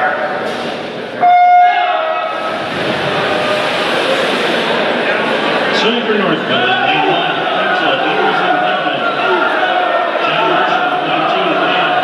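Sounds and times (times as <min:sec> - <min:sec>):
crowd noise in pool hall: 0:00.0 - 0:12.0.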